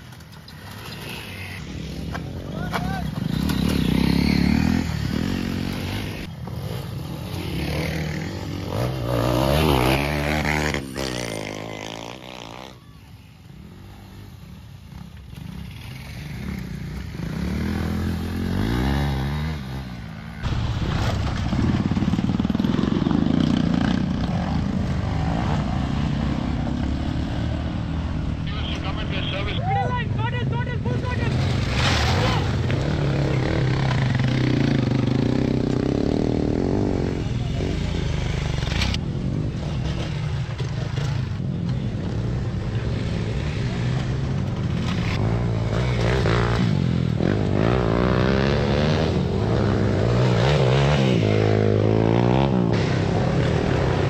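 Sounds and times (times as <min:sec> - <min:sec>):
off-road motorcycle engines: 0:00.0 - 0:54.0
spectators calling: 0:28.4 - 0:31.6.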